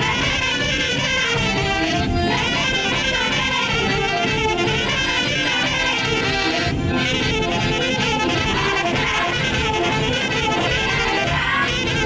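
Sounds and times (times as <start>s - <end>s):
brass band playing: 0.0s - 12.0s
children singing together: 8.5s - 12.0s.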